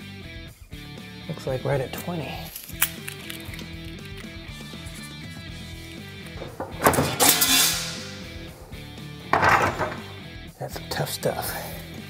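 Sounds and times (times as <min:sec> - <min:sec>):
background music: 0:00.0 - 0:12.0
metal shear cutting sheet: 0:06.3 - 0:10.1.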